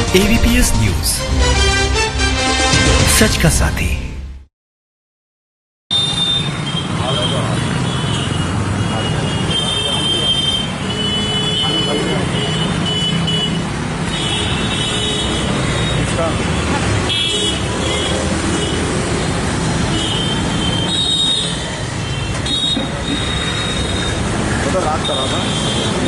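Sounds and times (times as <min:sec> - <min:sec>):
people's voices: 0:00.0 - 0:01.2
road traffic: 0:00.0 - 0:04.4, 0:05.9 - 0:26.0.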